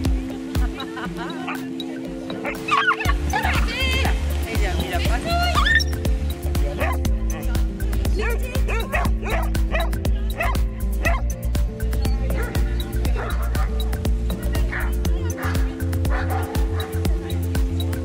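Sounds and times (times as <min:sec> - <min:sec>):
dogs yipping and barking: 0:02.3 - 0:03.6, 0:05.6 - 0:06.1, 0:06.8 - 0:07.4, 0:08.6 - 0:13.9, 0:14.7 - 0:17.4
music with heavy bass beat: 0:05.3 - 0:18.0.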